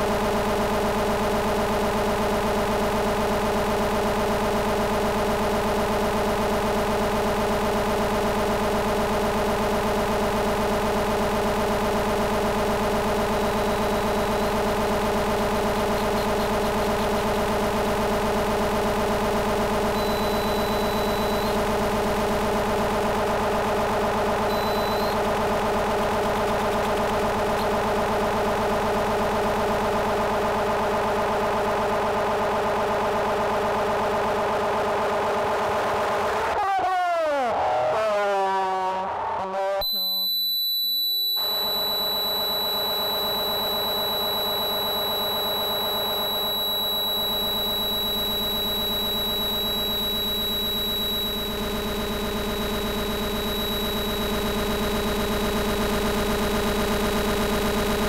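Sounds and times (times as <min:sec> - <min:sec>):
thin high whine: 0:19.9 - 0:21.6, 0:39.6 - 0:58.0.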